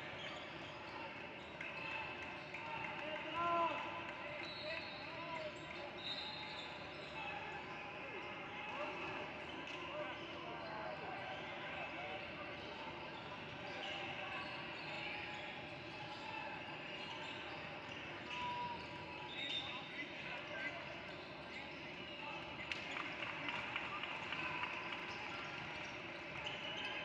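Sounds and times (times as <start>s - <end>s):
echoing voices and chatter: 0.0s - 27.0s.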